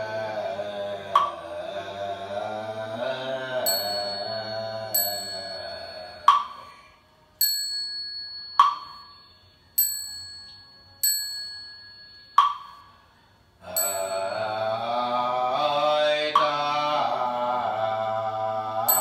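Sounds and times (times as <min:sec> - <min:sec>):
group chanting in unison: 0:00.0 - 0:06.7, 0:13.6 - 0:19.0
bell ringing: 0:03.6 - 0:06.7, 0:07.4 - 0:13.1, 0:13.7 - 0:14.8.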